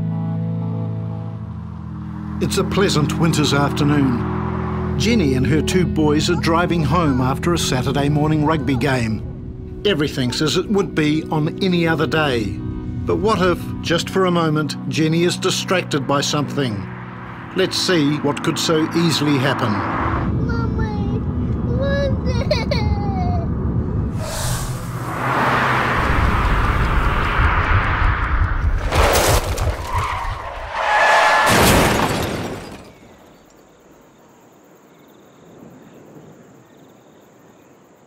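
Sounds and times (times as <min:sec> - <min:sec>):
car engine rumble: 0:00.4 - 0:33.4
tyres skidding: 0:01.3 - 0:21.5, 0:24.1 - 0:33.6
small child's voice: 0:20.3 - 0:23.5
violent car crash: 0:25.0 - 0:33.4
glass breaking: 0:28.8 - 0:30.4, 0:31.1 - 0:33.2.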